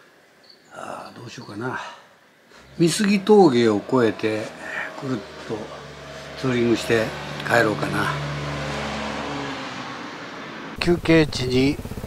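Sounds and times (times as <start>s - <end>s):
vehicle engine humming: 2.5s - 12.0s.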